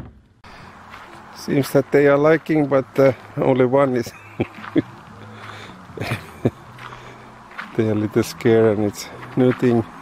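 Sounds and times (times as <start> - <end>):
footsteps crunching on gravel: 0.4 - 10.0.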